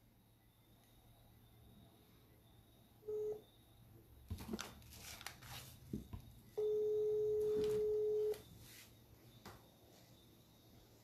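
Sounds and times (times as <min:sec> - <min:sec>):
telephone ringback tone: 0:03.1 - 0:03.4, 0:06.6 - 0:08.4.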